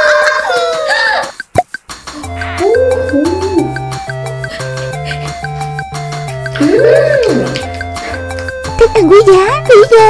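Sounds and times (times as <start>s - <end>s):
bouncy music with bass line: 0.8s - 10.0s.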